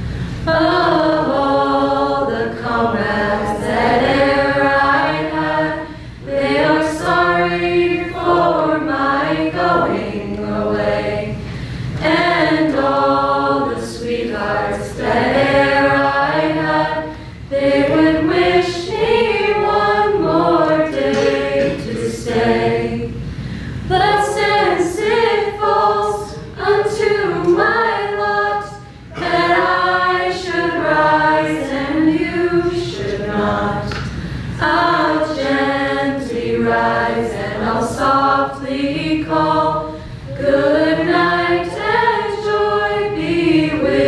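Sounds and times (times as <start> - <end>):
young choir singing a cappella: 0.0 - 44.0.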